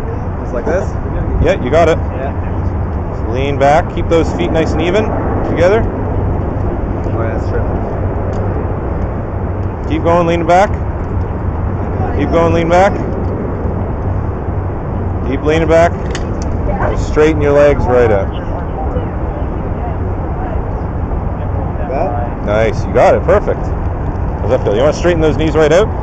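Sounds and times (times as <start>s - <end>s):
wind noise on microphone: 0.0s - 26.0s.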